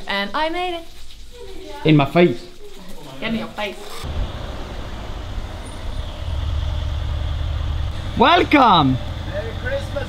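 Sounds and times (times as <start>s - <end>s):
car engine low rumble: 4.0s - 10.0s.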